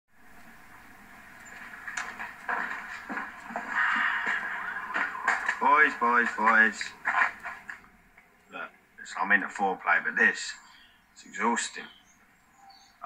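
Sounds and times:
murmur of voices on tv: 2.5 - 7.9.

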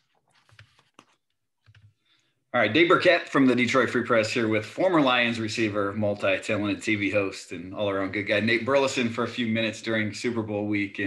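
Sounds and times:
faint clicks and taps: 0.0 - 2.0.

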